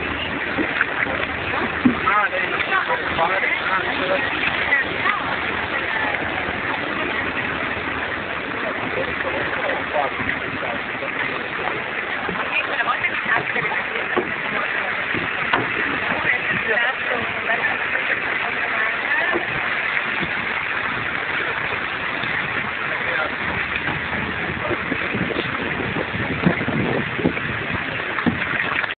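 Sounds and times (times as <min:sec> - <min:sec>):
soft low knocks: 0:00.0 - 0:17.6, 0:18.7 - 0:28.9
faint voices: 0:00.0 - 0:28.4
boat engine running: 0:00.0 - 0:28.9
water rushing: 0:00.0 - 0:28.9
wind on microphone: 0:00.0 - 0:28.9.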